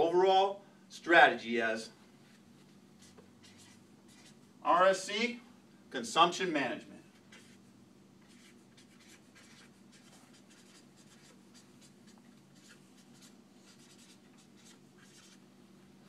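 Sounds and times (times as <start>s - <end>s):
steady low hum: 0.0s - 16.0s
marker writing on whiteboard: 2.2s - 4.5s, 7.1s - 15.4s.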